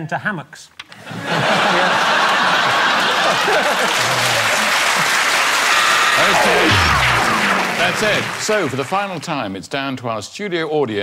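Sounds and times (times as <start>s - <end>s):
audience laughing: 1.0s - 8.9s
audience applauding: 1.6s - 9.4s.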